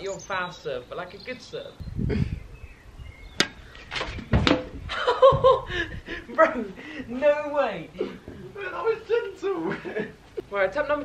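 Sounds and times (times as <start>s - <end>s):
ball hitting a can: 3.4s - 4.8s
racket striking tennis ball: 3.4s - 4.8s.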